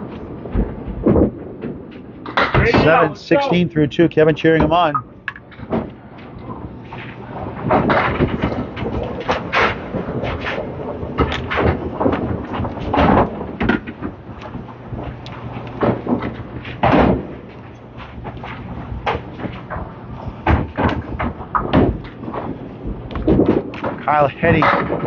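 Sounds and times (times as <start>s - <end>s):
bowling balls and pins crashing: 0.3s - 3.2s, 5.4s - 25.0s.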